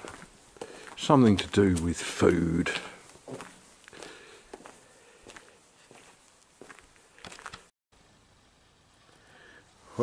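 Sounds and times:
faint footsteps outdoors: 0:00.0 - 0:07.7
low hiss: 0:08.0 - 0:10.0.

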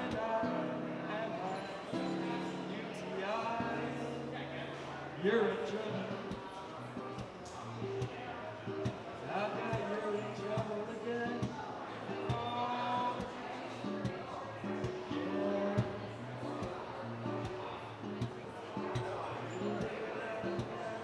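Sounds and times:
man singing: 0:00.0 - 0:08.2, 0:08.8 - 0:21.0
acoustic guitar strumming: 0:00.0 - 0:21.0.

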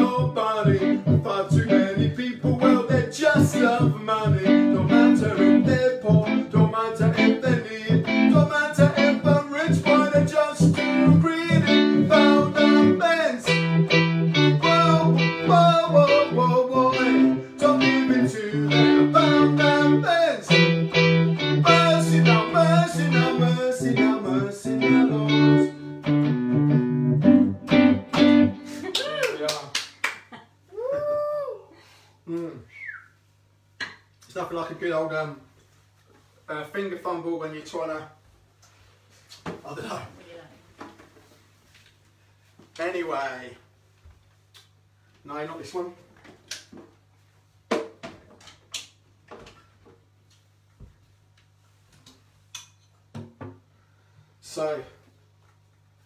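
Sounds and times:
man singing: 0:00.0 - 0:13.7, 0:14.3 - 0:20.7, 0:21.5 - 0:25.8
bass line: 0:00.0 - 0:28.7
keyboard chords: 0:00.0 - 0:28.9.

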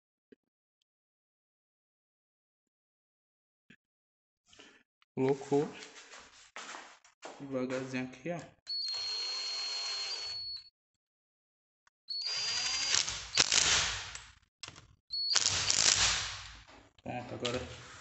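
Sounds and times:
cordless power driver whining: 0:08.7 - 0:10.6, 0:12.1 - 0:13.7.

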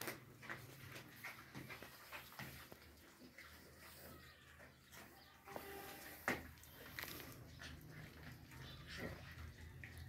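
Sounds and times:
puppies chewing: 0:00.0 - 0:10.0.

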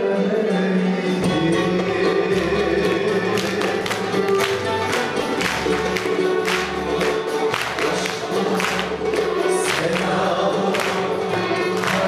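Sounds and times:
mixed choir singing: 0:00.0 - 0:05.2, 0:06.1 - 0:12.0.

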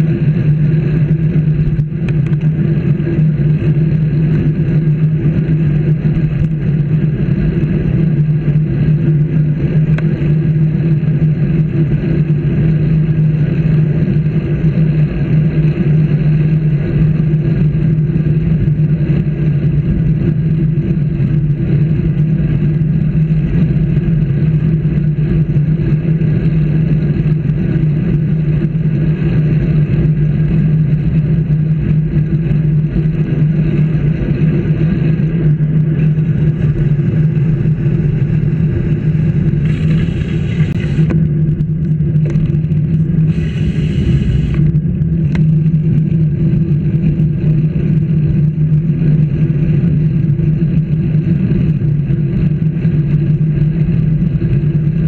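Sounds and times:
vehicle travel drone: 0:00.0 - 0:55.0.

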